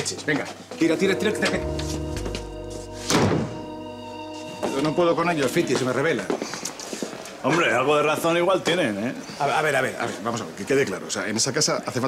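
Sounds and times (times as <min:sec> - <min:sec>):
background music chords: 0:00.7 - 0:06.4
wooden door slamming shut: 0:03.1 - 0:03.6.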